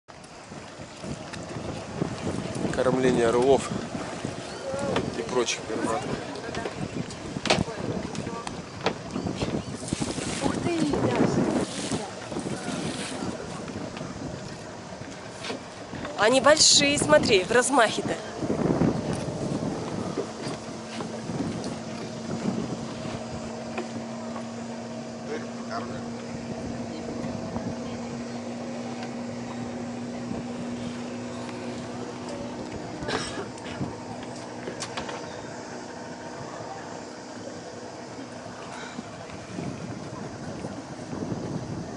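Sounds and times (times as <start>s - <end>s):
boat engine humming: 0.1s - 41.9s
motorboats droning: 0.1s - 41.9s
wind buffeting microphone: 0.1s - 41.9s.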